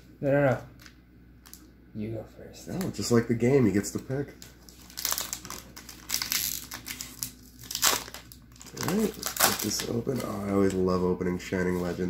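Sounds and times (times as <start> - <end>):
foil wrapper crinkling: 4.2 - 11.0.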